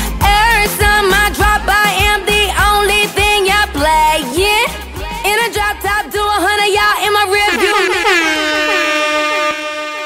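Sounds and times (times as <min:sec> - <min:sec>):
bass beat: 0:00.0 - 0:09.0
air horn blasts: 0:07.3 - 0:10.0.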